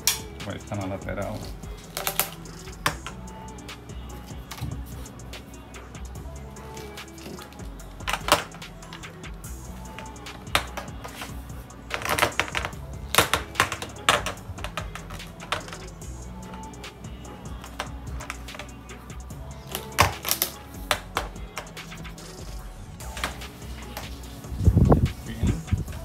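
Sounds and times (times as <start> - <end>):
background music: 0.0 - 26.0.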